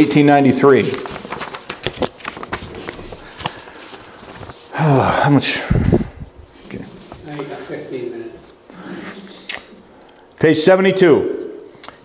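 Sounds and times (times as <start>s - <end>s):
paper rustling and flapping: 0.6s - 4.7s, 6.5s - 8.6s.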